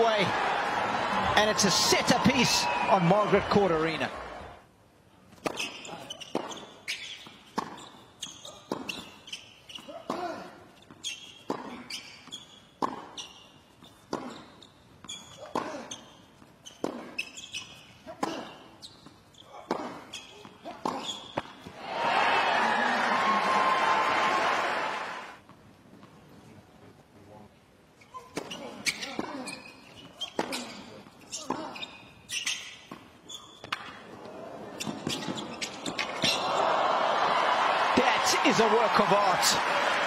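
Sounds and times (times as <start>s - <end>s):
crowd applauding and cheering: 0.0s - 4.6s, 21.8s - 25.4s, 36.1s - 40.0s.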